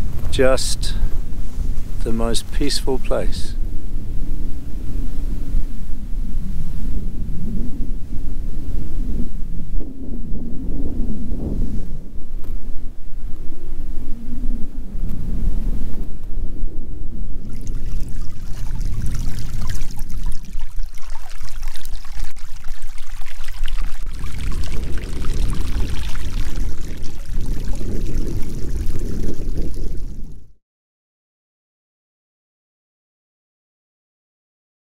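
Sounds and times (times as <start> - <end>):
wind rumbling on microphone: 0.0 - 30.6
shallow water running over stones: 17.4 - 30.4.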